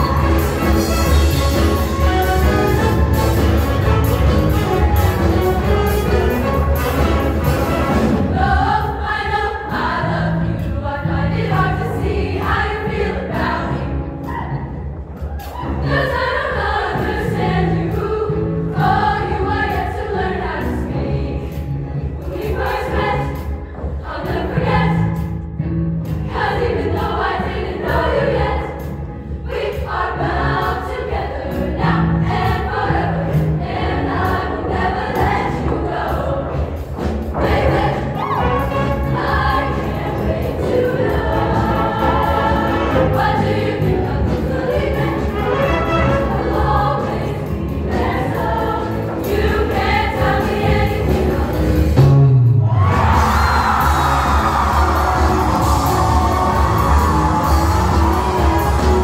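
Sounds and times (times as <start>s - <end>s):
live band playing: 0.0s - 8.5s, 36.8s - 48.2s, 50.6s - 59.0s
women's choir singing in harmony: 0.0s - 59.0s
steady bass line: 50.2s - 59.0s.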